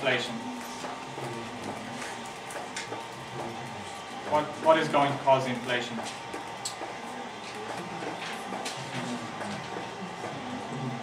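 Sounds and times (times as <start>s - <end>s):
low voices murmuring: 0.0s - 11.0s.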